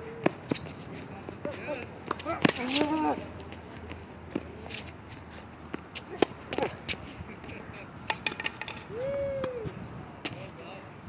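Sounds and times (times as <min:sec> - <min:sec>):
shoe scuffs: 0:00.2 - 0:07.3.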